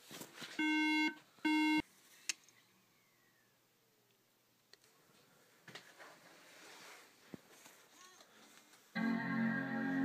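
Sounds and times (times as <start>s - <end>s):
faint handling sounds: 4.6s - 9.0s.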